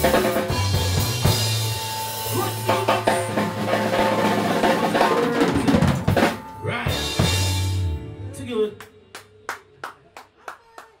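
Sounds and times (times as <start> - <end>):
hand clapping: 8.8 - 11.0.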